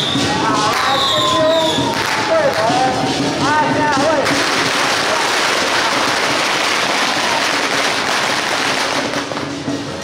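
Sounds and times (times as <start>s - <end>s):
firecrackers crackling: 0.0s - 10.0s.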